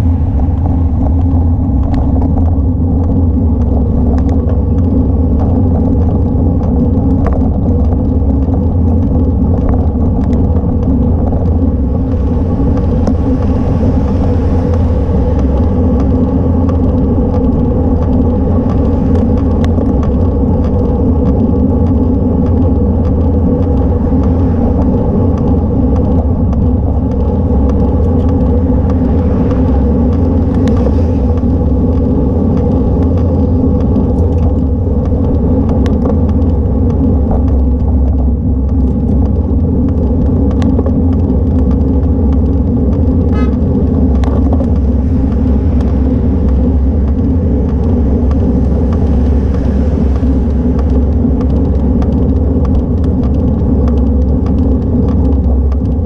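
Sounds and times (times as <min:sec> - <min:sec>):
road vibration rumble: 0:00.0 - 0:56.0
wind rumble: 0:00.0 - 0:56.0.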